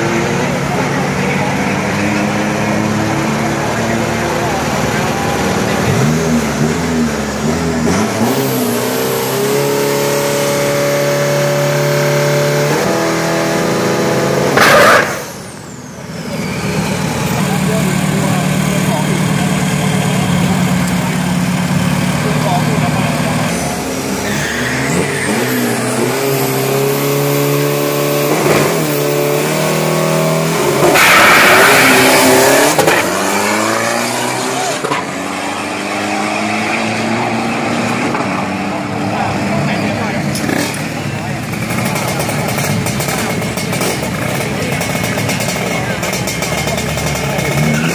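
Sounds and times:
crowd chatter: 0.0 - 47.9
pickup engine running: 38.2 - 47.9.

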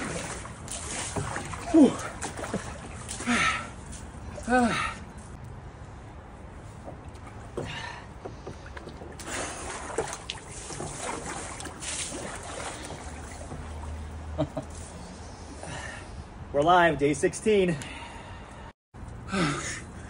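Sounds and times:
water sloshing and splashing: 0.0 - 15.0.

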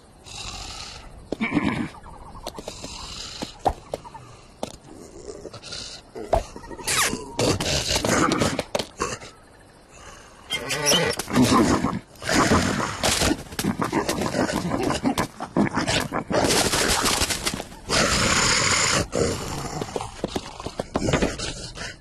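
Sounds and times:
cartoon animal growls and roars: 10.5 - 17.0.

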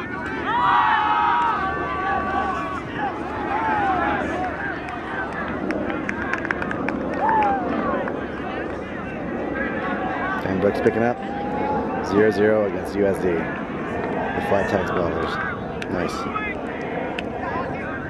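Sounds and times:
players chattering and shouting: 0.0 - 18.0.

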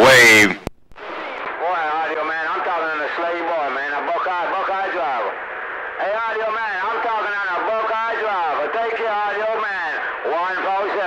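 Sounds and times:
voice over radio speaker: 0.0 - 0.7, 1.6 - 5.4, 6.0 - 11.0.

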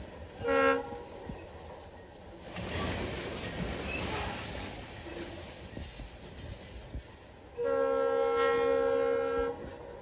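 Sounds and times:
rail cars rolling past: 0.0 - 10.0
locomotive horn blast: 0.4 - 1.0, 7.6 - 9.8.

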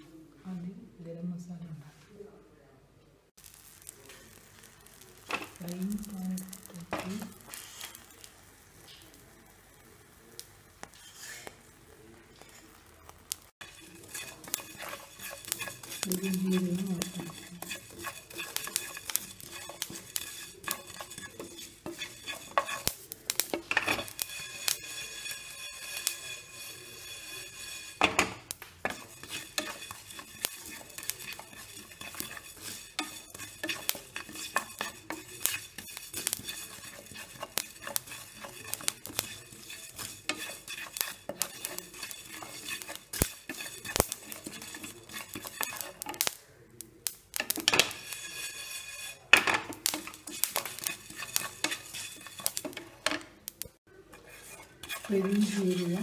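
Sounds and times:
seeds rustling in pan: 3.4 - 56.0
utensil scraping metal pan: 3.7 - 8.2, 10.9 - 11.7, 12.4 - 46.4, 47.1 - 56.0.

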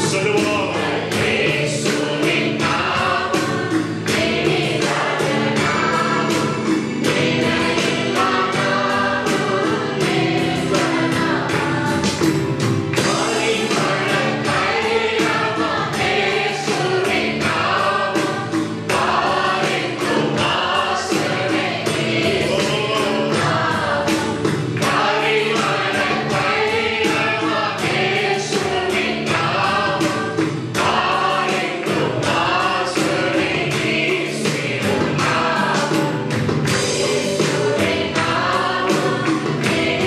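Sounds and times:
instrumental backing with beat: 0.0 - 40.0
men singing worship song: 0.0 - 40.0.

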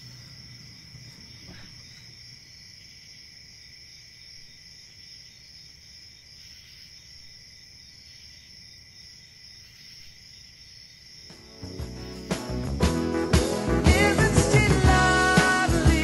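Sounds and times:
crickets chirring: 0.0 - 14.2.

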